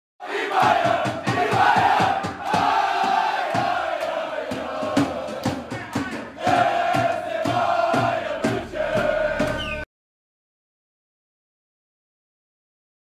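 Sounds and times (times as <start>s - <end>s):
men chanting and shouting: 0.2s - 9.8s
quick steady beat: 0.5s - 9.8s.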